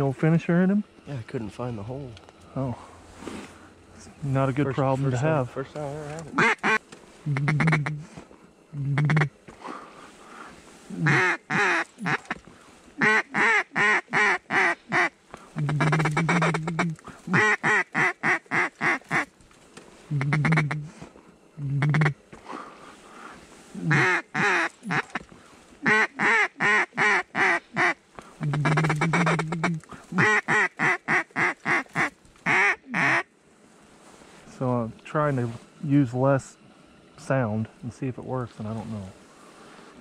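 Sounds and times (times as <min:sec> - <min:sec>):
duck call quacks: 0:06.3 - 0:08.1, 0:08.9 - 0:09.3, 0:10.9 - 0:12.4, 0:13.0 - 0:19.3, 0:20.1 - 0:20.9, 0:21.8 - 0:22.2, 0:23.8 - 0:33.3.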